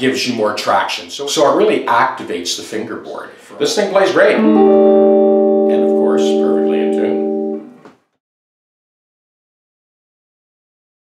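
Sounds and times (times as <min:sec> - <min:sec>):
electric guitar chord ringing: 0:04.3 - 0:07.8.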